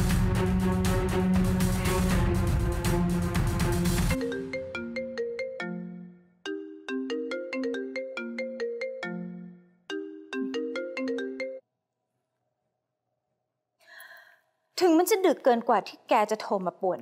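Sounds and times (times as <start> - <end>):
phone ringtone plucked melody: 4.2 - 11.6.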